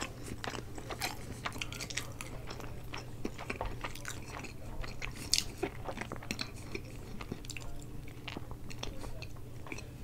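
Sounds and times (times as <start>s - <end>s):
wet chewing mouth clicks: 0.0s - 9.9s.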